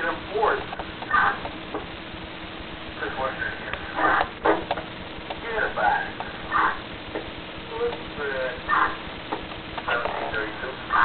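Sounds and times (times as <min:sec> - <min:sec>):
police radio voice chatter: 0:00.0 - 0:01.6, 0:03.0 - 0:04.7, 0:05.3 - 0:07.0, 0:09.8 - 0:11.0
radio hiss: 0:00.0 - 0:11.0.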